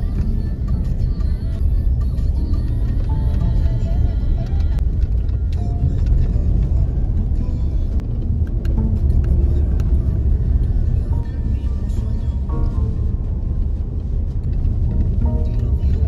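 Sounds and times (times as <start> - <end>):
car road and engine rumble: 0.0 - 16.0
music playing: 0.0 - 16.0.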